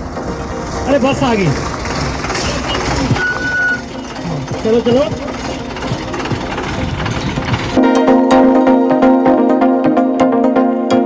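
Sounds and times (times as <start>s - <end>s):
mechanical rumble with knocks: 0.0s - 7.8s
plucked string background music: 0.0s - 11.0s.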